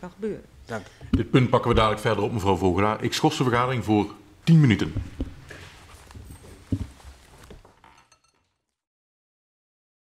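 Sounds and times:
knocks and thumps: 1.0s - 2.4s, 4.8s - 8.1s
light rustling: 5.0s - 8.3s.

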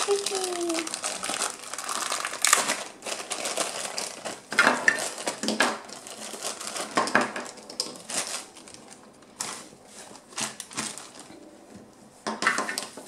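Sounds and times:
bubble wrap crinkling: 0.0s - 11.5s.

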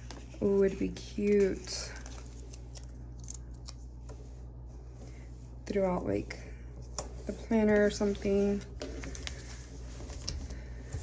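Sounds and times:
paper sticker peeling crackles: 1.6s - 3.9s.

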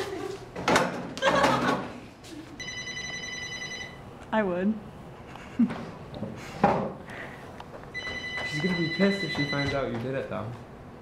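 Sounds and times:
telephone ringing: 2.6s - 4.1s, 7.9s - 9.9s.

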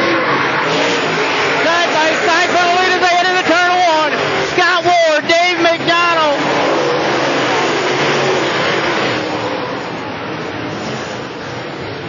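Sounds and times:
race car engines running hard: 0.0s - 12.0s.

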